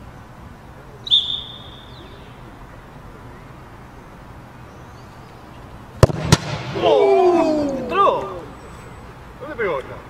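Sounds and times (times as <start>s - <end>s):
football kicked thump: 6.0s - 6.8s.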